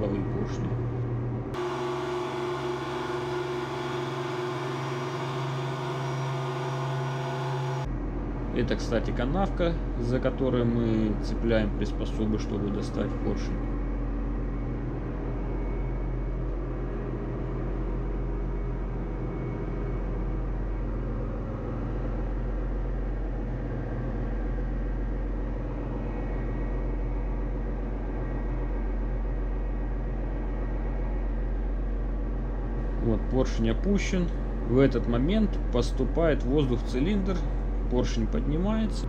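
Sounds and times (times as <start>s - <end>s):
engine room machinery hum: 0.0s - 39.0s.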